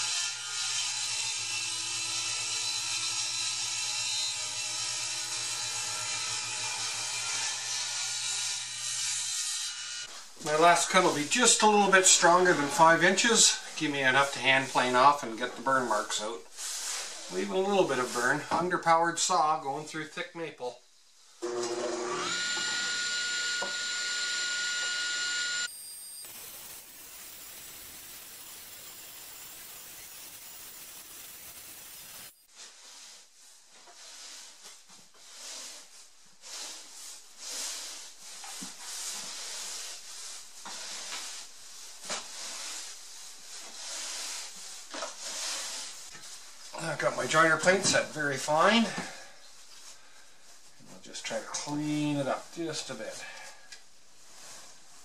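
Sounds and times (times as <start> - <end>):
broom sweeping concrete floor: 10.0 - 18.8, 26.4 - 55.0
table saw motor whine: 21.4 - 32.3
steady hiss: 26.1 - 55.0.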